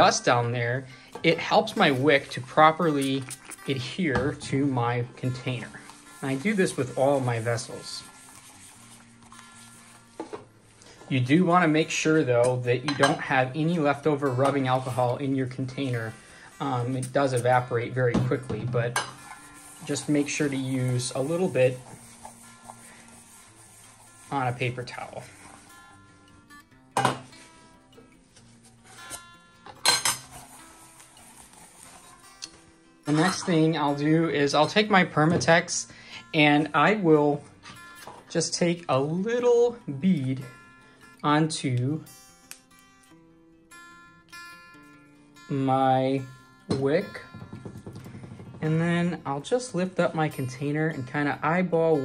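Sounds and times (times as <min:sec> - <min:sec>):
faint background music: 0:00.0 - 0:52.0
metal tin knocking on countertop: 0:47.3 - 0:48.7.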